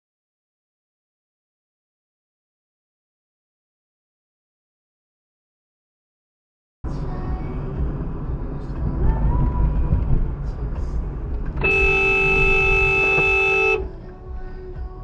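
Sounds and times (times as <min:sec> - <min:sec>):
car driving on road: 0:06.9 - 0:15.0
car horn blaring: 0:11.6 - 0:13.9.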